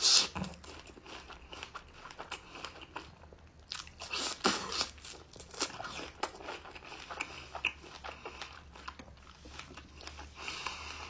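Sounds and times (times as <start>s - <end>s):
chewing strawberry: 0.0s - 11.0s.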